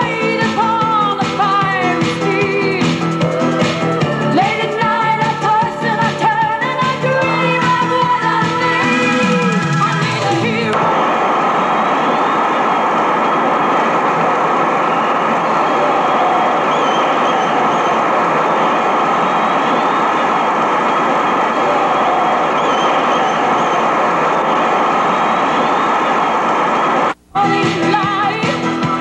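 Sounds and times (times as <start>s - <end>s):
crowd roaring: 2.8s - 5.3s, 10.8s - 27.2s.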